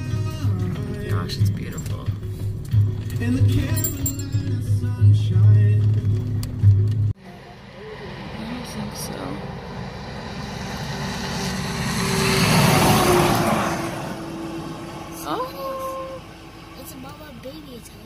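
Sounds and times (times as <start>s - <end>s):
vehicle passing on highway: 7.2s - 17.8s.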